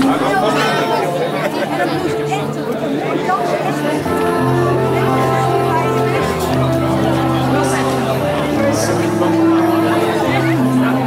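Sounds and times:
chatter of many voices: 0.0s - 11.0s
held music notes: 0.0s - 11.0s.

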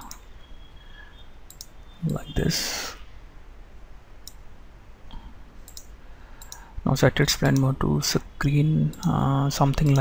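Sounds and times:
computer mouse clicking: 1.5s - 2.2s, 5.6s - 6.6s, 9.7s - 10.0s.

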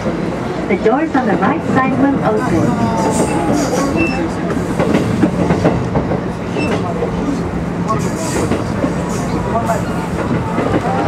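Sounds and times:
train wheels rumbling on rails: 0.0s - 11.0s
clickety-clack: 3.0s - 7.2s, 7.9s - 11.0s.

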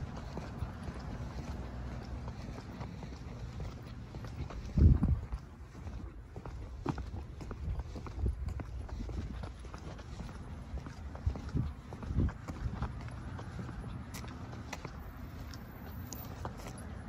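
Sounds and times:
footsteps on pavement: 0.0s - 17.0s.

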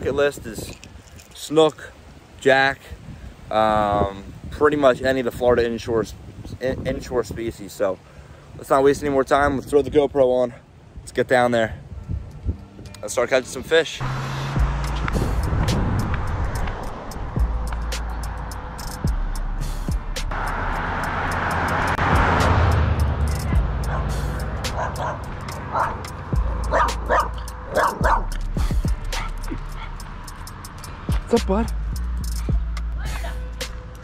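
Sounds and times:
background music with bass line: 12.0s - 34.0s
dog barking and yipping: 23.8s - 28.4s.

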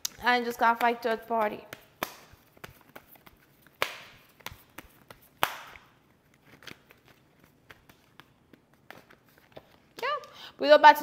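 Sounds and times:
cards snapping: 0.8s - 10.0s.

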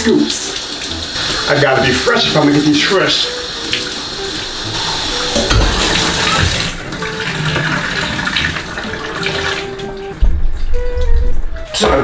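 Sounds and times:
shower water splattering on tiles: 0.0s - 11.3s.

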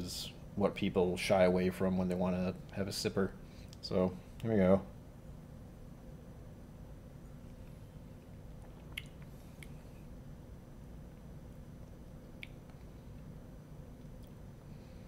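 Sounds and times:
faint room hum: 0.0s - 15.0s
wet mouth clicks: 8.6s - 9.8s, 12.3s - 12.9s.

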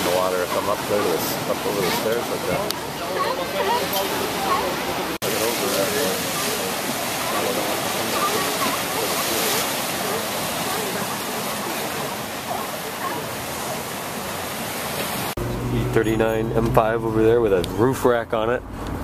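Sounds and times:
faint voices: 0.0s - 14.7s
surf breaking on rocks: 0.0s - 15.4s.

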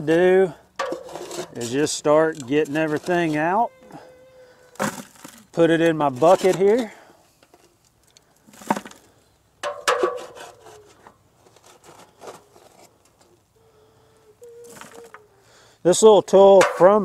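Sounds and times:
metal tool scraping ash in fire pit: 0.8s - 3.6s, 4.8s - 7.0s, 9.6s - 12.9s.

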